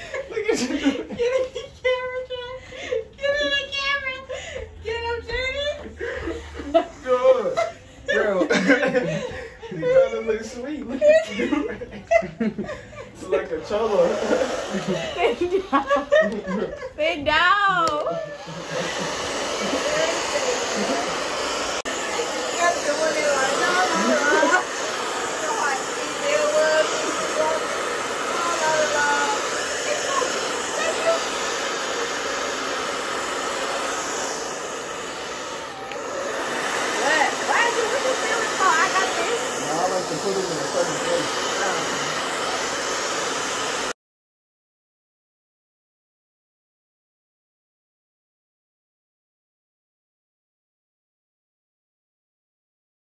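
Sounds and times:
hair dryer blowing: 0.0 - 44.0.

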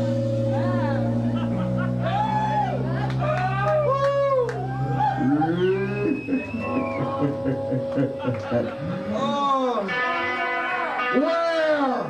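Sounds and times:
pulsing bass line: 0.0 - 9.9
electric guitars bending notes: 0.0 - 12.0
live rock band playing: 0.0 - 12.0.

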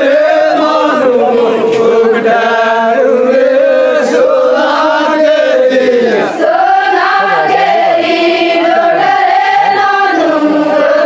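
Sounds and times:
crowd singing in unison: 0.0 - 11.0.

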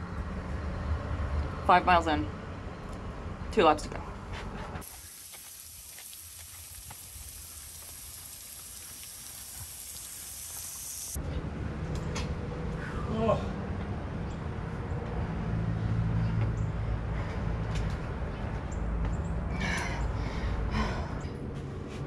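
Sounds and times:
sprinkler water jet hissing: 4.8 - 11.2.

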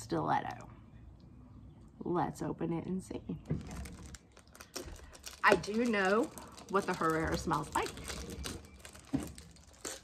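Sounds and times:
packaging crinkling: 3.4 - 10.0.

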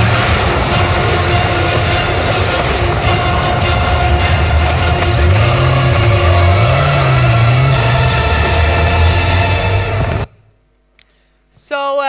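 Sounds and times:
low tone sliding in pitch: 0.0 - 10.3
video soundtrack over speakers: 0.0 - 10.6.

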